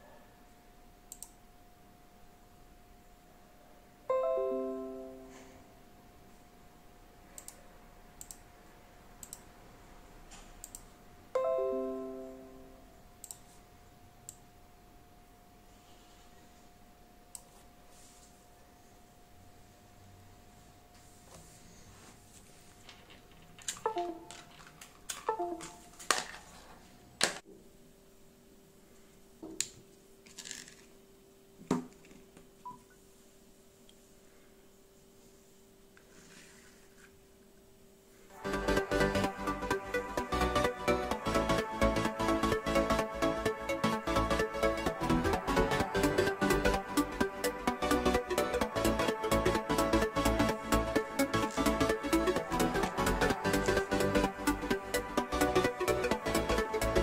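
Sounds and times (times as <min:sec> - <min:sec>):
faint steady hum: 0:00.0 - 0:57.0
device disconnect chime: 0:23.9 - 0:24.3.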